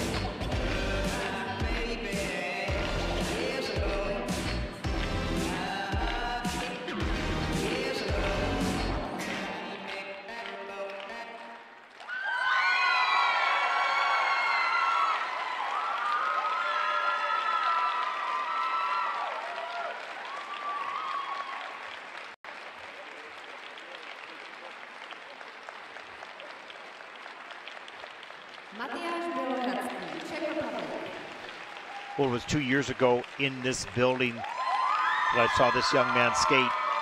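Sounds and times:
crowd applauding and cheering: 0.0s - 37.0s.

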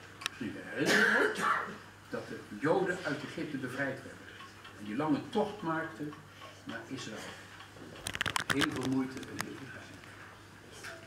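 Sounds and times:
person clearing throat: 0.8s - 1.8s.

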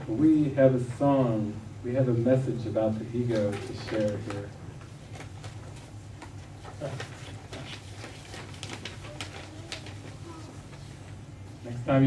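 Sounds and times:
steady low hum: 0.0s - 12.0s
faint murmurs: 6.6s - 12.0s.

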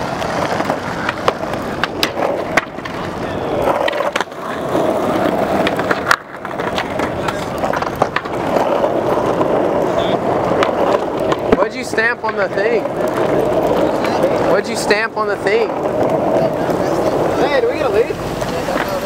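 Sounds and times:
skateboard wheels rolling on asphalt: 0.0s - 19.0s.

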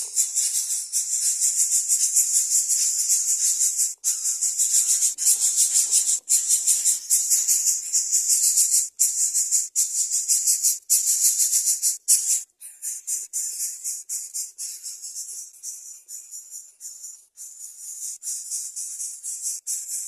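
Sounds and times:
nestlings begging with rasping hiss: 0.0s - 15.9s.

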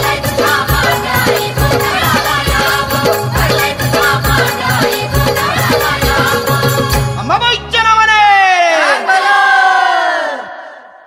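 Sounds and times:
chorus singing unaccompanied: 0.0s - 7.2s, 8.8s - 10.8s.

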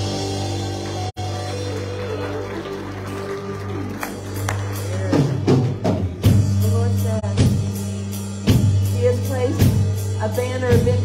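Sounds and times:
worship band music: 0.0s - 11.0s.

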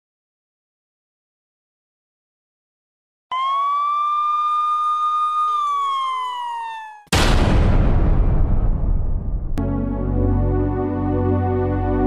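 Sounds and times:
siren-like wail: 3.3s - 7.2s
loud noisy crash: 7.1s - 9.6s.

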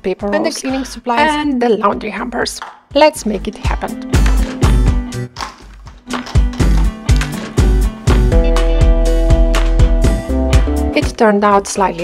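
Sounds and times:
music with beat and deep bass: 4.1s - 11.2s.

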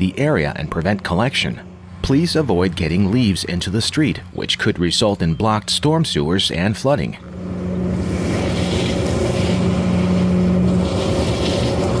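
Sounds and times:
leaf vacuum droning: 0.0s - 12.0s.

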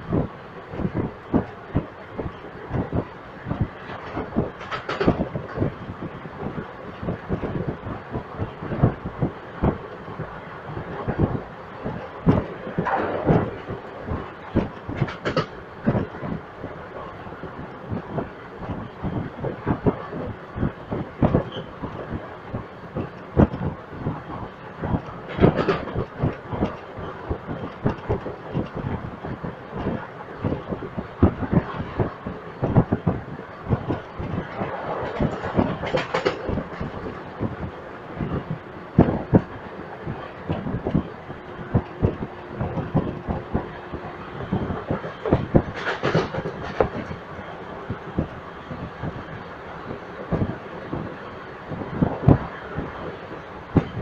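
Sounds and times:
train rumble: 0.0s - 54.0s
train wheels clattering over rail joints: 0.2s - 54.0s.

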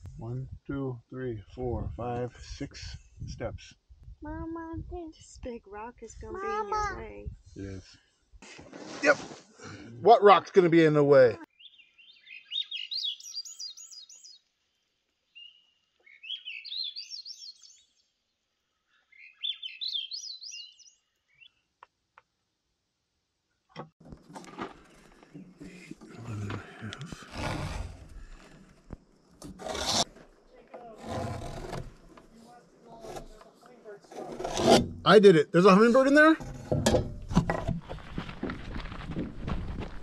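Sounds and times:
songbird singing: 11.4s - 22.3s
scraping on wooden board: 24.0s - 35.0s, 36.4s - 38.2s.

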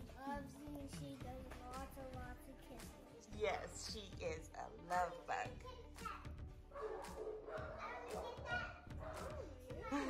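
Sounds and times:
young child talking: 0.2s - 3.0s, 5.5s - 6.4s, 7.7s - 10.0s.

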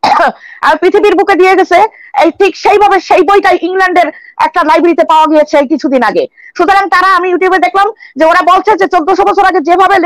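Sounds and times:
person talking: 0.3s - 10.0s.

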